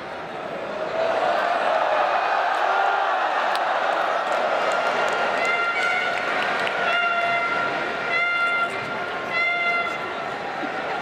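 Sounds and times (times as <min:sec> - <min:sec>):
stadium crowd noise: 0:00.0 - 0:11.0
horn long held notes: 0:06.8 - 0:10.1.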